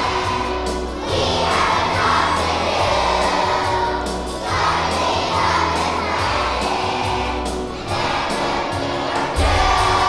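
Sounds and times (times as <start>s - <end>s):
children's choir singing: 0.0s - 10.0s
musical accompaniment: 0.0s - 10.0s.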